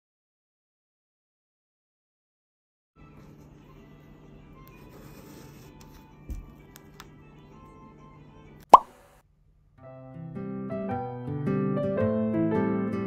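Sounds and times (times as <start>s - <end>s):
pen writing on notepad: 4.7s - 6.6s.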